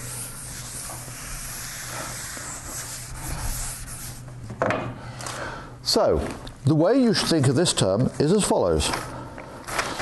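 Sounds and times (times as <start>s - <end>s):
writing scratching on a board: 0.0s - 4.3s
steady low hum: 0.0s - 10.0s.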